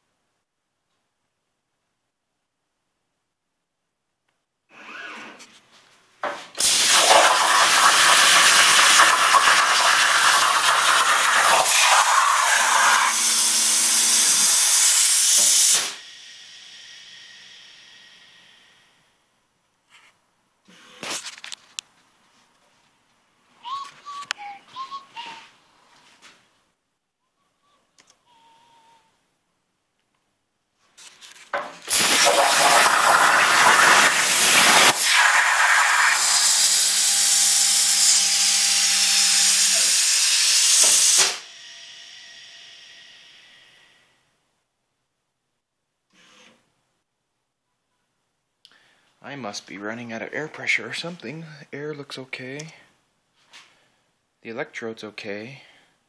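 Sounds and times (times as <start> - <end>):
plasma cutter arc hissing: 6.6 - 18.7, 31.9 - 42.5
air hiss: 6.6 - 18.8, 31.9 - 41.6.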